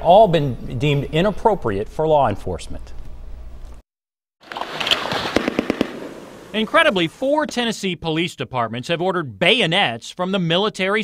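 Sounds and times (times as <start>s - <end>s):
gunfire cracks: 4.5s - 6.6s.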